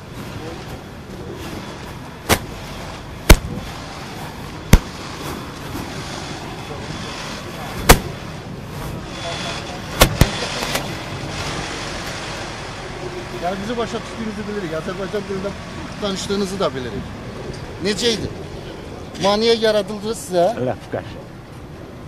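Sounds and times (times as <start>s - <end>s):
outdoor background hum: 0.0s - 22.0s
sharp clacks of hard objects: 2.3s - 2.6s, 3.3s - 3.6s, 4.7s - 5.0s, 7.8s - 8.2s, 10.0s - 10.9s.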